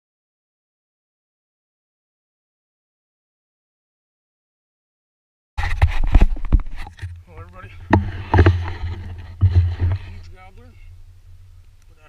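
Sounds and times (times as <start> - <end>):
low microphone rumble: 5.6 - 11.8.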